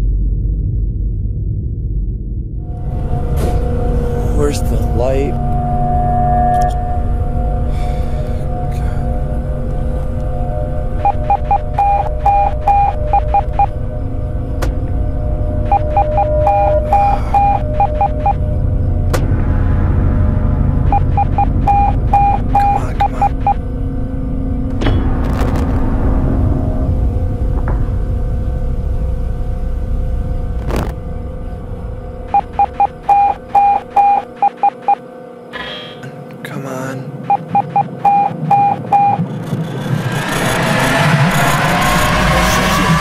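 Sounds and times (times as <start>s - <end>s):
low rumble and hum: 0.0s - 43.0s
morse code beeps: 11.0s - 13.7s, 15.7s - 18.4s, 20.8s - 23.6s, 32.3s - 35.0s, 37.2s - 39.2s.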